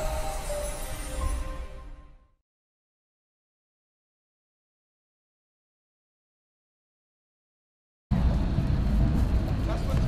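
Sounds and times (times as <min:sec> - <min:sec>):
low rumble: 0:08.1 - 0:10.0.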